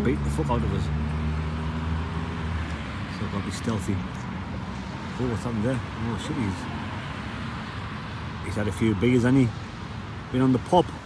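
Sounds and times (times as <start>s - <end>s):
cars passing: 0.0s - 11.0s.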